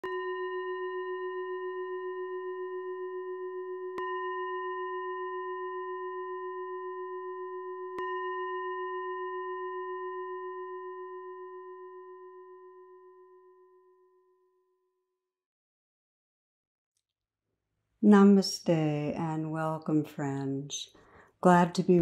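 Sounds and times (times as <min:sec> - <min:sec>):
singing bowl ringing: 0:00.0 - 0:15.0.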